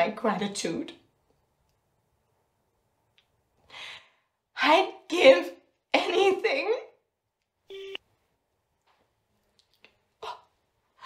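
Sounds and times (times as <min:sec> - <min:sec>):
woman speaking: 0:00.0 - 0:01.0, 0:04.6 - 0:07.0.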